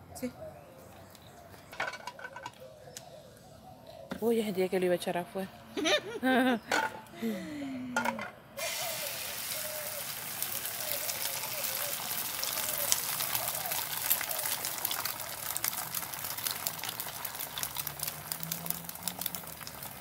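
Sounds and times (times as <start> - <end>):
egg sizzling in a frying pan: 8.6 - 20.0.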